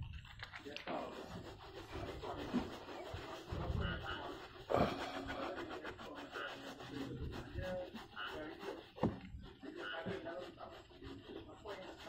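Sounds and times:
towel rubbing on plastic: 0.0 - 12.0.

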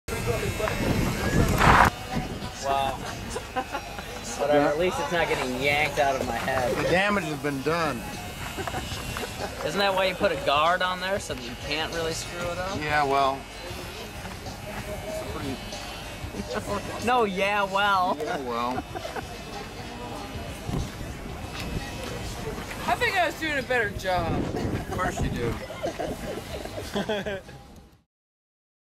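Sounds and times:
voices talking: 0.1 - 26.9
electric hair clippers buzzing: 0.1 - 27.4
loud noisy burst: 1.4 - 1.9.

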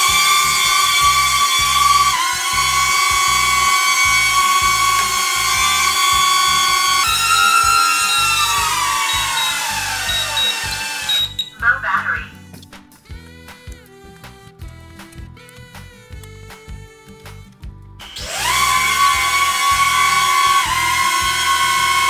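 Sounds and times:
drone motors whining: 0.0 - 22.0.

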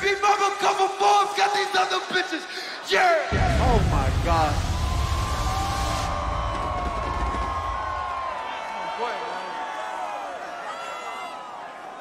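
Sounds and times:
stadium crowd roaring: 0.0 - 12.0
deep rumble of fireworks: 3.4 - 8.1.

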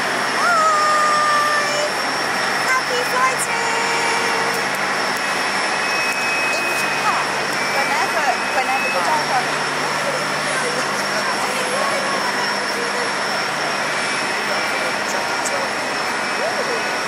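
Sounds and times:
jet engine whine: 0.0 - 17.0.

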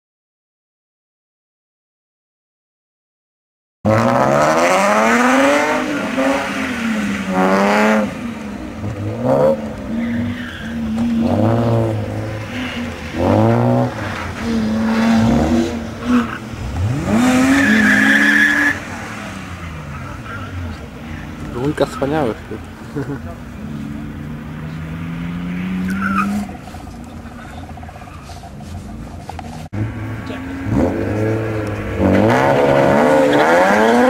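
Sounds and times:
racing car engine revving: 3.9 - 34.0
tyre squeal: 9.9 - 15.3, 16.0 - 18.8, 25.6 - 29.7.

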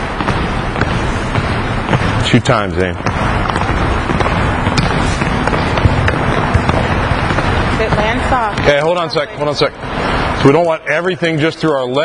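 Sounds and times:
footfalls on gym court: 0.0 - 8.9
movement noise in gym: 0.0 - 10.7.

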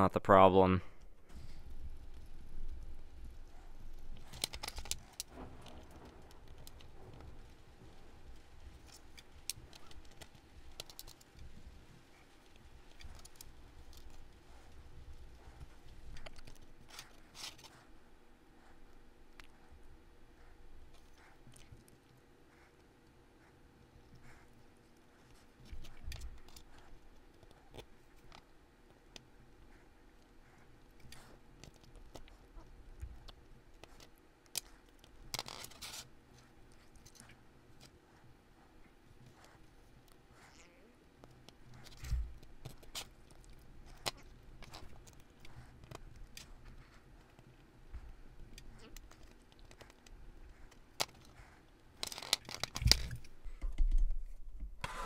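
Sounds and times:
faint steady hum: 0.0 - 55.0
small metal parts clicking: 4.2 - 6.9.

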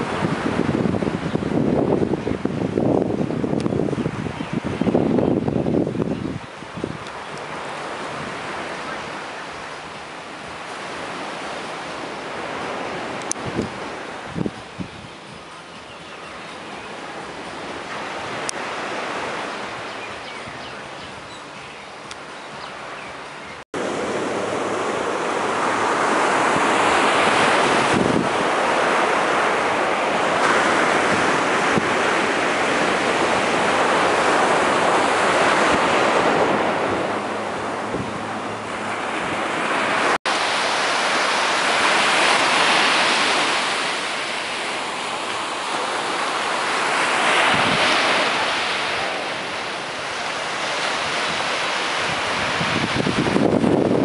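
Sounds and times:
surf breaking on a beach: 0.0 - 21.3, 23.8 - 54.0.

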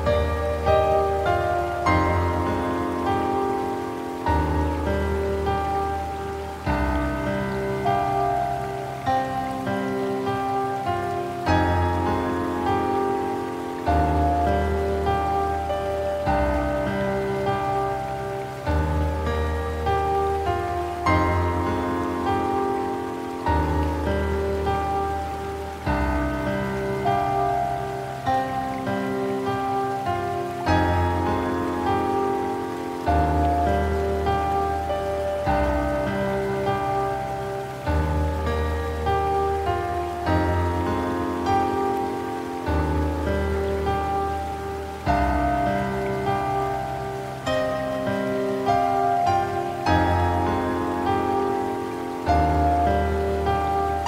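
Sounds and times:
slow gentle solo piano: 0.0 - 54.0
steady rain-like hiss: 0.0 - 54.0.

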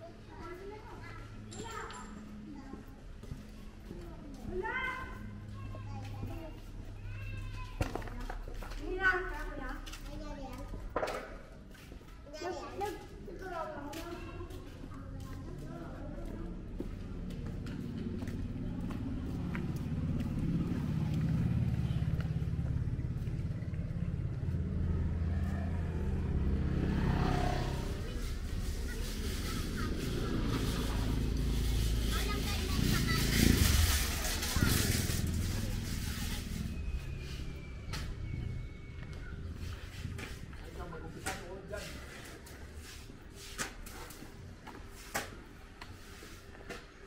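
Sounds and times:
children calling and talking: 0.0 - 47.0
vehicle engine running: 17.3 - 39.2.

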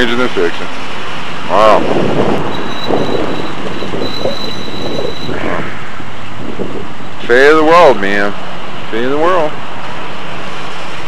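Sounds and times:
high-pitched squeal: 0.0 - 11.0
road traffic noise: 0.0 - 11.0.

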